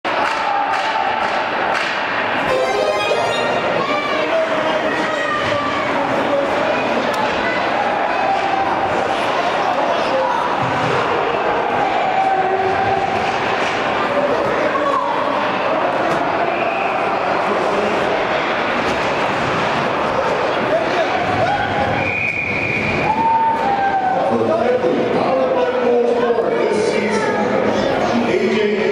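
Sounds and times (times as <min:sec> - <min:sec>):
shouts and chatter: 0:00.1 - 0:28.9
referee's whistle: 0:21.9 - 0:23.2.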